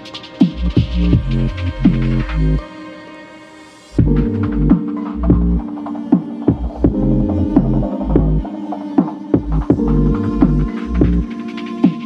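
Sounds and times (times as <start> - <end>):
deep pulsing bass line: 0.6 - 2.6, 4.0 - 5.7, 6.5 - 8.5, 9.4 - 11.3.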